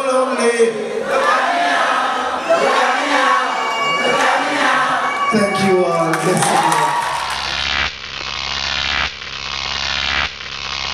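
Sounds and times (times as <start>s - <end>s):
live stage music: 2.1s - 7.6s
buzzing logo stinger: 7.3s - 10.9s.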